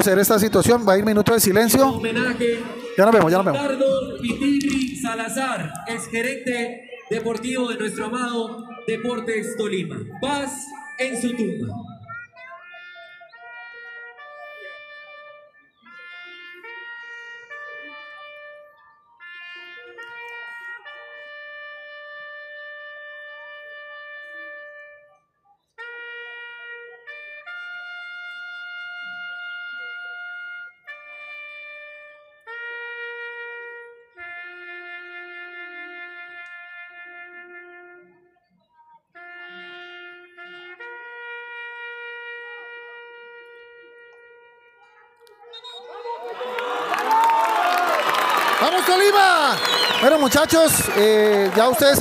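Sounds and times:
solo wind instrument slow tune: 12.6s - 25.2s, 25.8s - 38.4s, 39.2s - 46.0s
trumpet holding long note: 12.7s - 25.2s, 25.8s - 38.4s, 39.2s - 45.4s.

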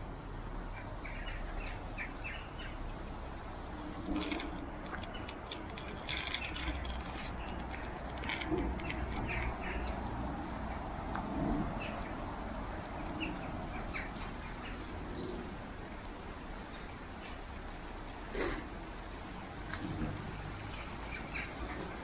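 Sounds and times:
wind: 0.0s - 22.0s
flowing water: 0.2s - 22.0s.

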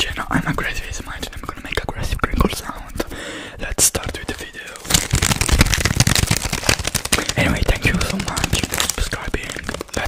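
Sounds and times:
person whispering into microphone: 0.0s - 5.0s, 7.1s - 10.0s.

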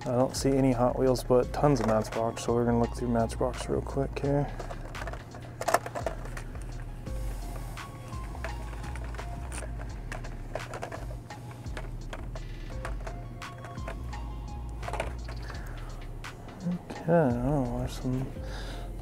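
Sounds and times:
music with low bass line: 0.4s - 5.4s, 6.0s - 19.0s
plastic packaging clicks and rattles: 4.5s - 6.9s, 8.0s - 14.1s, 14.7s - 15.7s.

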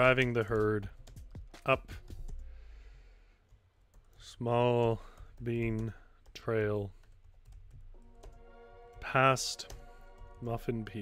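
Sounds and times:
person breathing out softly: 2.4s - 3.5s.

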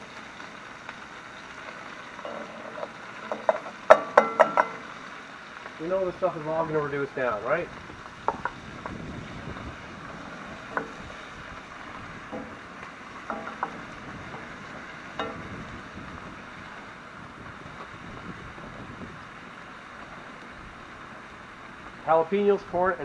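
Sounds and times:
vegetables sizzling in a pan: 0.0s - 23.0s.

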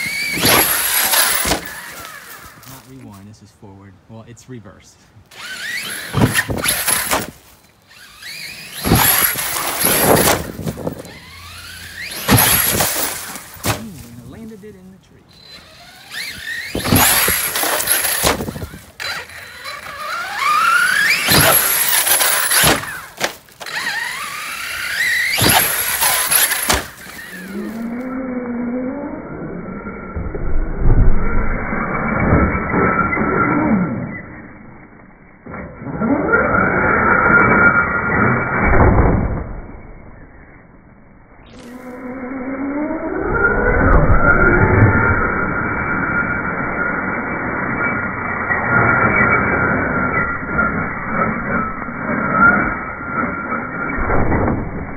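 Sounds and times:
electric toy truck motor whine: 0.0s - 2.7s, 5.3s - 13.7s, 15.3s - 38.8s, 41.5s - 54.0s.

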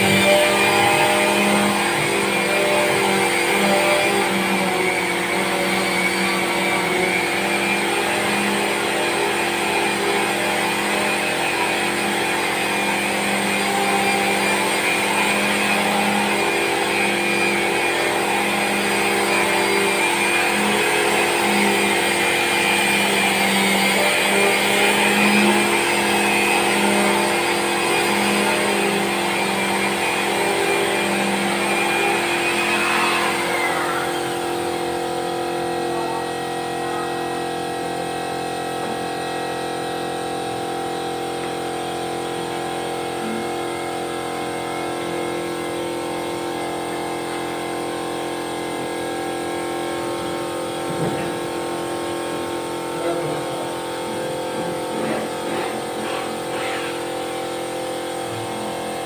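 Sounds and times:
power tool motor whining: 0.0s - 59.0s.

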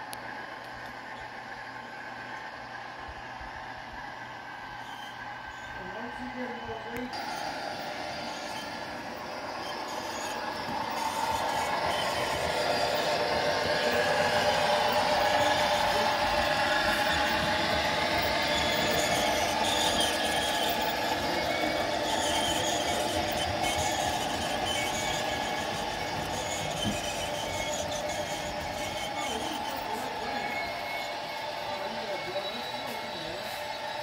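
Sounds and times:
model train running hum: 0.0s - 34.0s.

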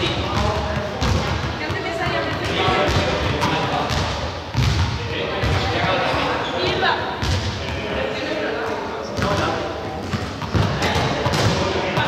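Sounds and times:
people talking: 0.0s - 4.3s, 5.0s - 12.0s
ball bouncing on floor: 0.2s - 5.6s, 9.2s - 12.0s.

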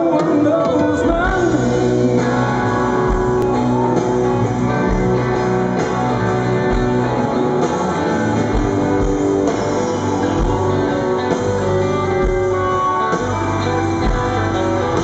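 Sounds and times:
electric guitar notes: 0.0s - 15.0s
rock band playing: 0.0s - 15.0s.

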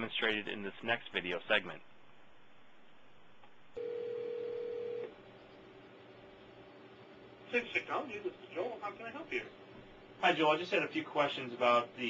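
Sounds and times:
telephone line tone: 3.8s - 5.1s.

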